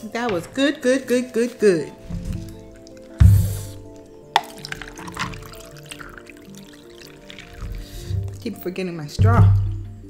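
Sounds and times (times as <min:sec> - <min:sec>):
background music: 0:00.0 - 0:10.0
drink poured into glass with ice: 0:04.4 - 0:08.4.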